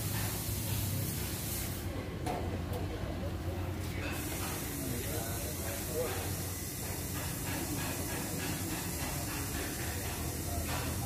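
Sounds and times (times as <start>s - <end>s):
faint indistinct voices: 1.7s - 11.0s.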